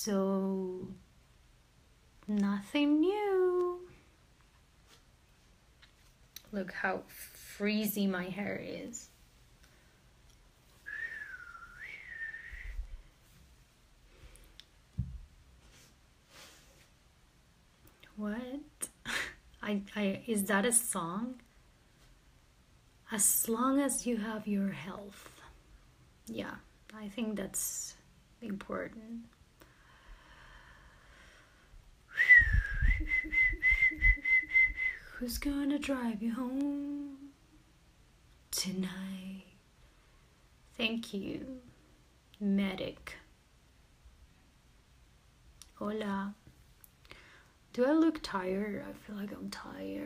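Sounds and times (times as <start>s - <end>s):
wavering whistled note: 10.9s - 13.0s
woman whistling: 10.9s - 13.0s, 32.1s - 35.2s.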